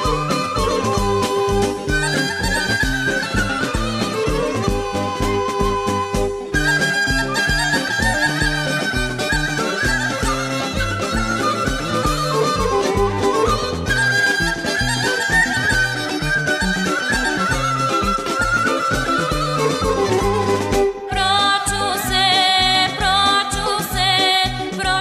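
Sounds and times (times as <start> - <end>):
instrumental folk dance music: 0.0 - 25.0.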